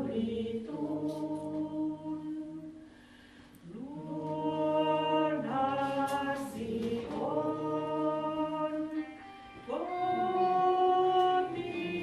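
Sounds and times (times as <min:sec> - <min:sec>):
slow hymn music: 0:00.0 - 0:12.0.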